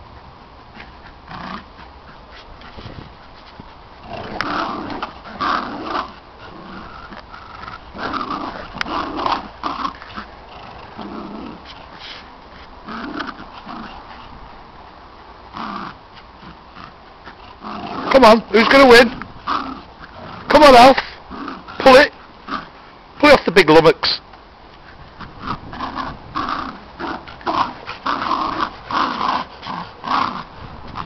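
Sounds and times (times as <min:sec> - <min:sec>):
dogs play-growling: 0:00.7 - 0:14.7, 0:15.5 - 0:22.9, 0:24.8 - 0:31.0.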